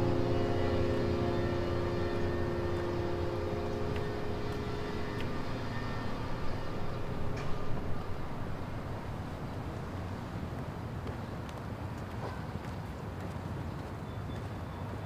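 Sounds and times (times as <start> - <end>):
low sustained music chord: 0.0 - 10.4.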